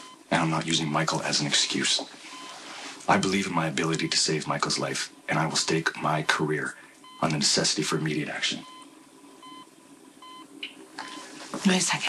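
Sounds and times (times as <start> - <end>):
patient monitor beeping: 0.0 - 0.5, 2.3 - 4.8, 7.0 - 11.4.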